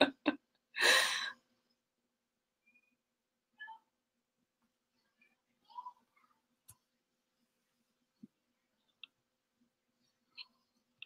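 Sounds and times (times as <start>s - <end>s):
woman laughing: 0.0s - 1.2s.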